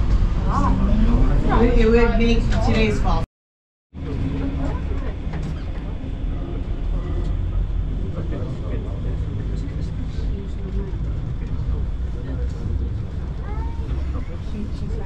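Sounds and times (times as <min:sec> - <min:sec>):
cable car low rumble: 0:00.0 - 0:03.2, 0:04.0 - 0:15.0
faint passengers' voices: 0:00.0 - 0:03.2, 0:04.0 - 0:15.0.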